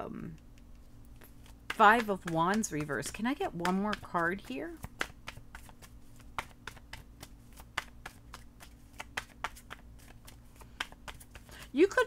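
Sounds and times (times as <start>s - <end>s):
cards being shuffled: 0.5s - 12.0s.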